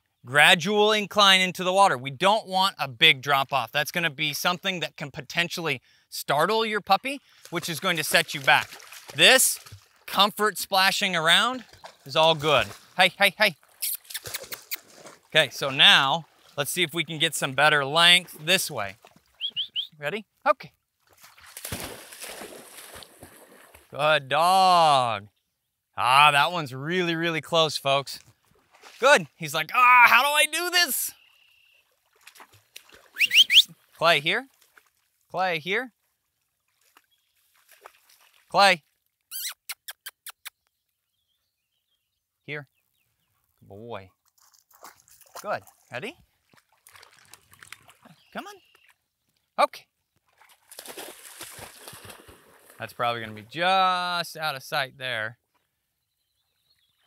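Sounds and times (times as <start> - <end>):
dog splashing through water: 7.4 - 10.1, 11.4 - 13.0, 13.6 - 16.6, 21.0 - 24.0, 28.5 - 29.0, 32.0 - 35.1, 36.6 - 38.5, 44.3 - 48.8, 50.3 - 52.8.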